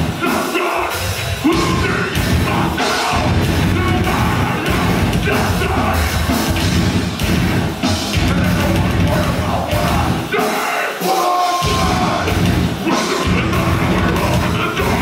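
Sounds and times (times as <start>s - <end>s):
bass guitar: 0.0s - 10.4s, 11.6s - 15.0s
distorted guitars: 0.0s - 15.0s
pounding drums: 0.0s - 15.0s
screamed vocals: 0.1s - 6.3s, 8.5s - 15.0s.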